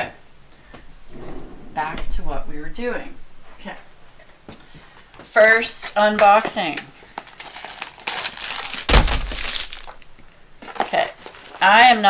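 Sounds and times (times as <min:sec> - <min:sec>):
plastic wrap crinkling: 0:06.7 - 0:12.0.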